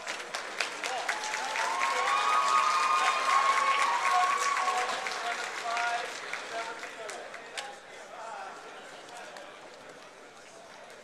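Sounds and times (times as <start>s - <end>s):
crowd applauding: 0.0s - 7.7s.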